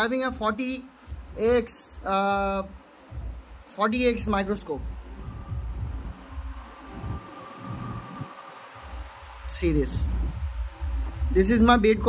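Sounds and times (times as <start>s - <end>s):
faint steady high tone: 5.0s - 11.2s.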